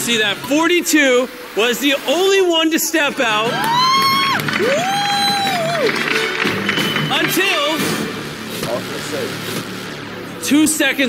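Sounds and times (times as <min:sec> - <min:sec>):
loud background music: 0:03.1 - 0:11.0
person whooping: 0:03.5 - 0:06.0.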